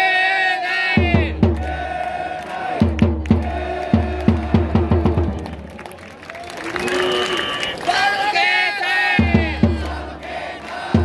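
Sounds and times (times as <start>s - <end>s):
bass drum beats: 1.0s - 2.0s, 2.8s - 5.7s, 9.2s - 10.2s
crowd voices: 3.4s - 11.0s.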